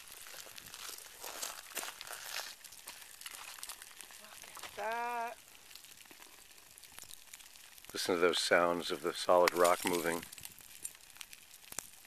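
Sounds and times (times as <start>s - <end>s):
lava crust crackling and ticking: 0.0s - 12.0s.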